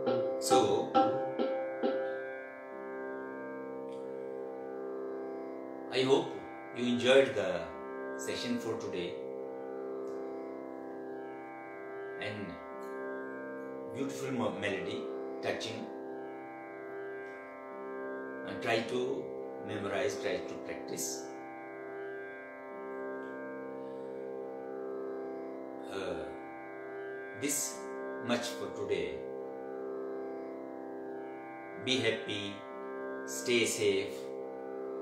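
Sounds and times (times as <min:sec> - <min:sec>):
electronic tanpura drone: 0:00.0 - 0:35.0.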